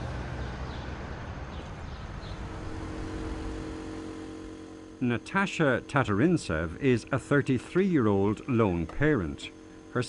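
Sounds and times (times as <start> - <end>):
steady multi-tone hum: 0.0 - 10.0
steady low rumble: 0.8 - 7.2.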